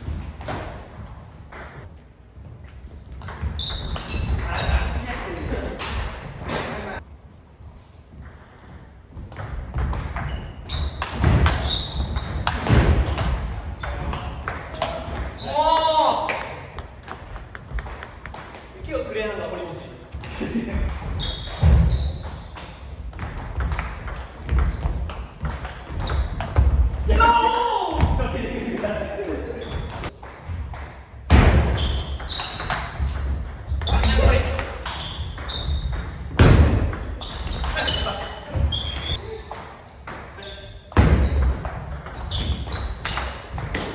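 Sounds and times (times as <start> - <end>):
shoes squeaking: 2.6 - 7.0, 10.1 - 16.0, 20.7 - 26.8, 31.7 - 36.3, 37.1 - 39.5, 40.4 - 43.9
player shouting: 27.1 - 28.1.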